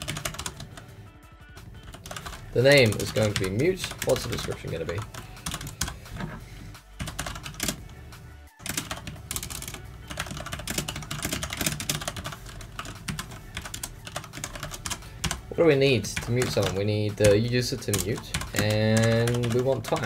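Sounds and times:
fast typing on keyboard: 0.0s - 0.8s, 1.8s - 6.4s, 7.0s - 7.8s, 8.6s - 20.0s.

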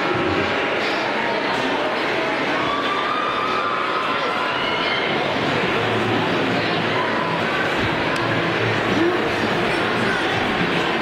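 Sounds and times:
ice rink noise: 0.0s - 11.0s.

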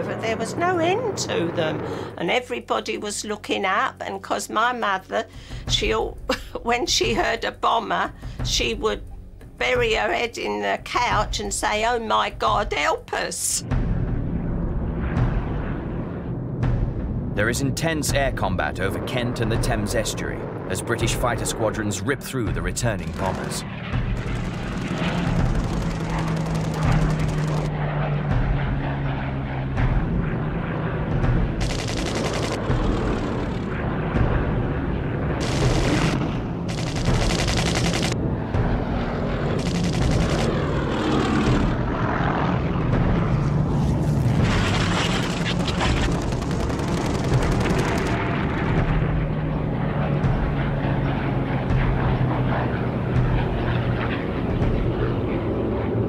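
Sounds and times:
propeller aircraft engines droning: 0.0s - 56.0s
machine-gun fire bursts: 24.1s - 27.7s, 31.6s - 33.5s, 35.4s - 38.2s, 39.6s - 40.6s, 44.6s - 48.4s.

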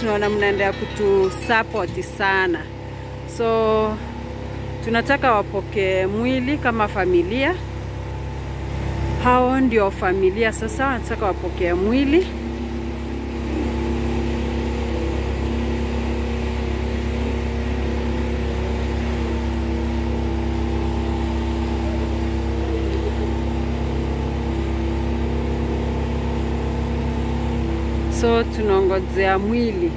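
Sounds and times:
humming tones: 0.0s - 4.8s, 9.1s - 29.9s
engine idling: 0.0s - 29.9s.

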